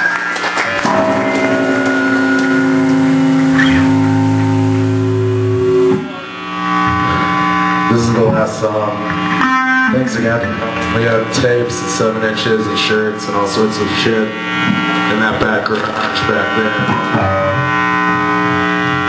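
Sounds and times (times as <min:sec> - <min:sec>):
electric guitar droning notes: 0:00.0 - 0:19.0
rock band playing live: 0:00.5 - 0:09.9.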